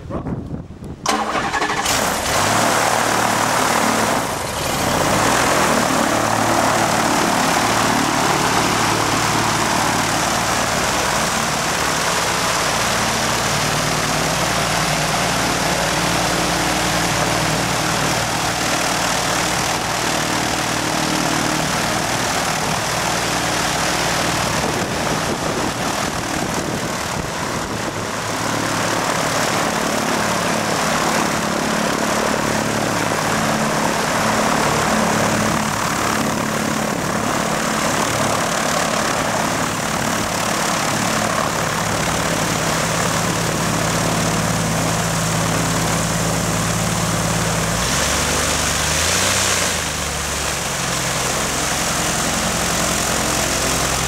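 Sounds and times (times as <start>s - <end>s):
propeller aircraft engine drone: 0.0s - 54.0s.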